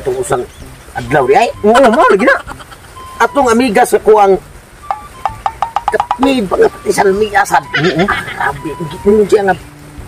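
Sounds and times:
men talking animatedly: 0.0s - 9.7s
faint steady tone: 0.5s - 10.0s.

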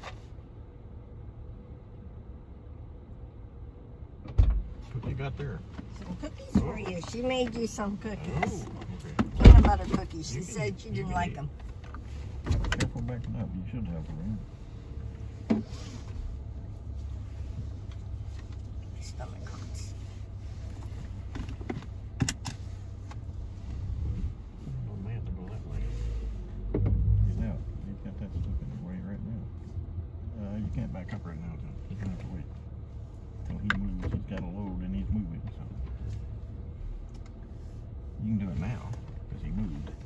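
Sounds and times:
car engine running: 0.0s - 40.0s.

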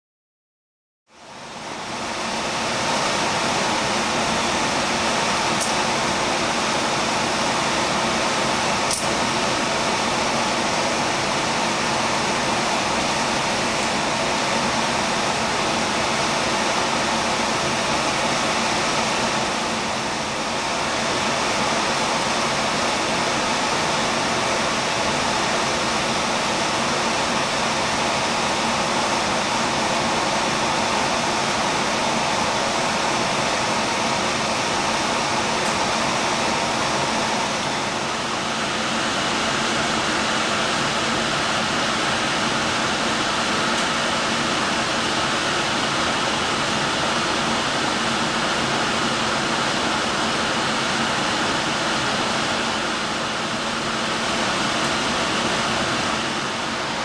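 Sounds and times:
blower fan airflow: 1.1s - 57.0s.

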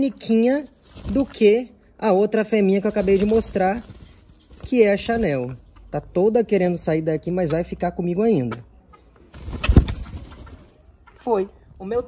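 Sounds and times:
hen flapping wings: 0.6s - 1.6s, 2.8s - 5.5s, 9.3s - 10.8s.

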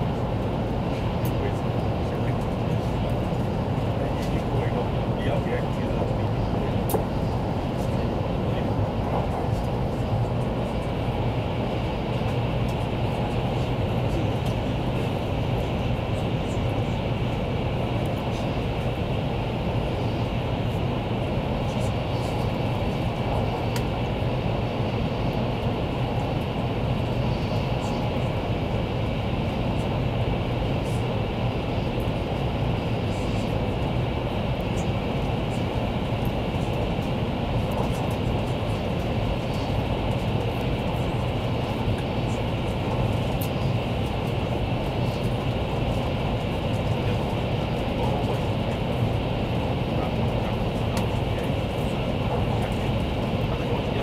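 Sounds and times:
rushing air and rail noise: 0.0s - 54.0s
train cabin low hum: 0.0s - 54.0s.

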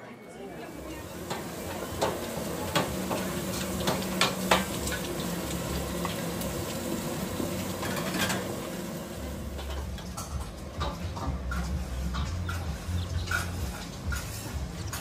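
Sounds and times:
rice sizzling in a wok: 0.6s - 15.0s
metal ladle clanking against wok: 9.5s - 15.0s.

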